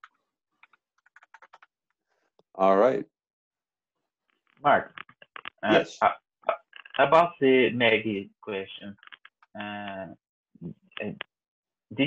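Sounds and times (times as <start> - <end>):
computer keyboard typing: 0.6 - 1.7.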